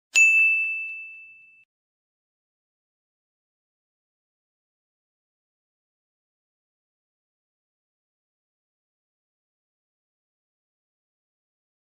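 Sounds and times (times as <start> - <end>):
bell-like ding: 0.1 - 1.7.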